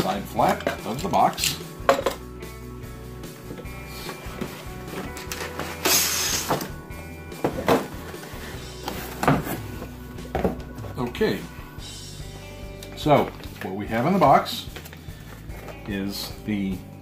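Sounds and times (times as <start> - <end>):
background music: 0.0 - 17.0
cardboard box sliding out: 3.8 - 6.8, 7.4 - 10.0
box knocks and thunks: 7.4 - 11.1.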